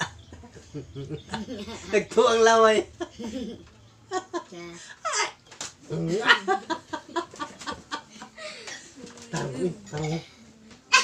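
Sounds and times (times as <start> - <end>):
person laughing in rhythmic bursts: 0.0 - 2.0.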